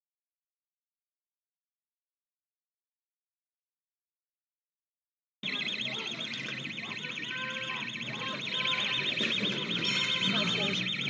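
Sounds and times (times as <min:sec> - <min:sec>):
distant shouting voices: 0:05.4 - 0:11.0
electronic alarm siren warbling: 0:05.4 - 0:11.0.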